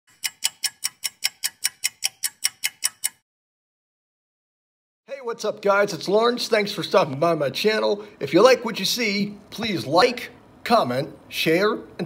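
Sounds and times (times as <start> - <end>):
rapid even ticking: 0.1 - 3.2.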